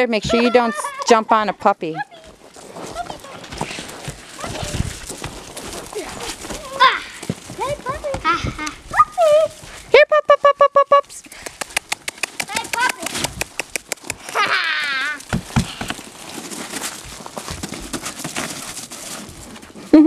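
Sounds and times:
laughter: 14.3 - 14.7.

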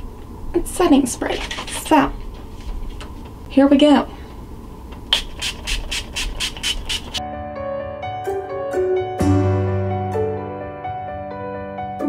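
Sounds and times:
spray bottle hissing: 5.1 - 7.2
soft keyboard music: 7.2 - 12.0.

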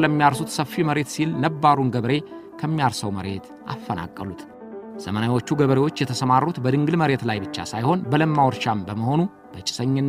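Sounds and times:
background music: 0.0 - 10.0
man talking: 0.0 - 10.0.

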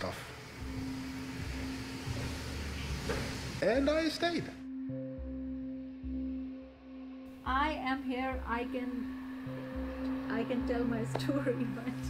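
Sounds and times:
even hiss: 0.0 - 4.6.

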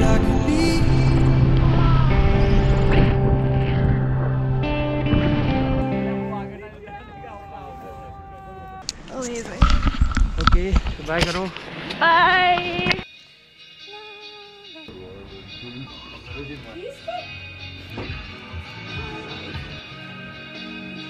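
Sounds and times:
background music: 0.0 - 6.8, 12.0 - 21.0.

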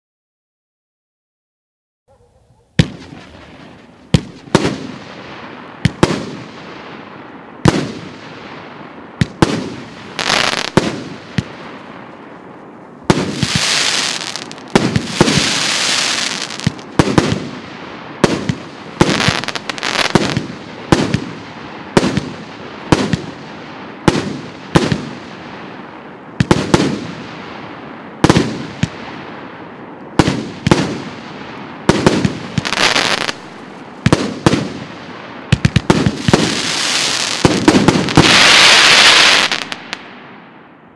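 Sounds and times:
dense firework crackling finale: 2.8 - 40.9
firework cake reports and crackling: 7.6 - 29.2, 30.2 - 40.2.

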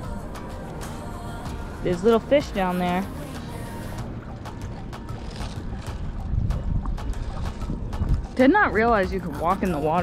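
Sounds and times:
wind buffeting microphone: 1.6 - 10.0.

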